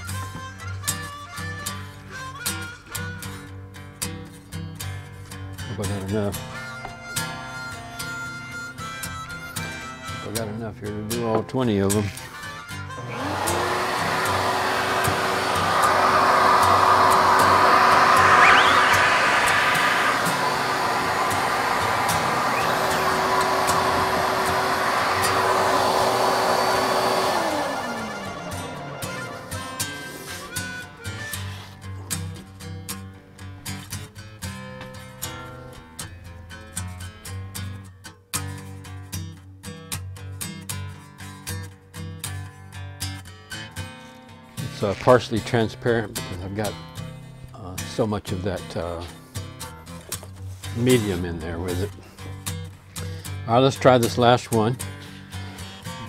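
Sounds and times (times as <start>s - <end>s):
acoustic blues guitar music: 0.0s - 5.7s
electric blower motor whine: 13.0s - 31.1s.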